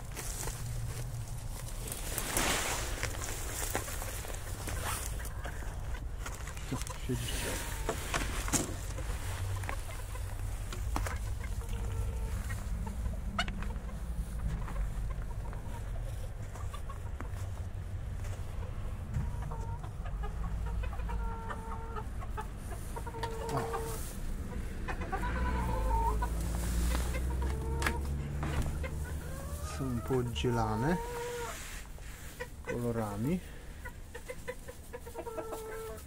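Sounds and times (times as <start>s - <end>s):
low steady rumble: 0.0s - 35.0s
chickens clucking: 0.0s - 36.0s.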